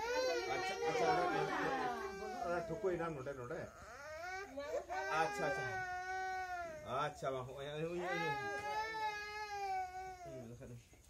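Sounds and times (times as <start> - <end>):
toddler crying: 0.0 - 3.0, 3.7 - 6.9, 8.0 - 10.4
adult voice: 0.5 - 3.7.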